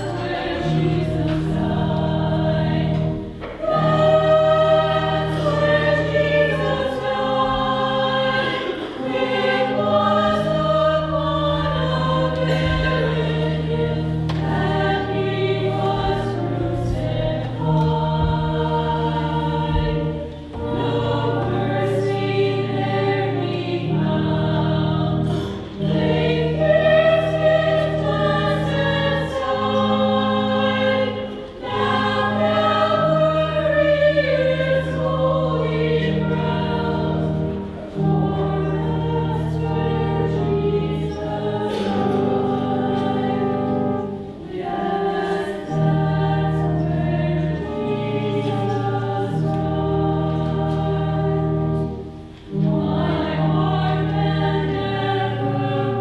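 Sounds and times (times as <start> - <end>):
group singing a hymn: 0.0 - 56.0
low held accompanying notes: 0.0 - 56.0.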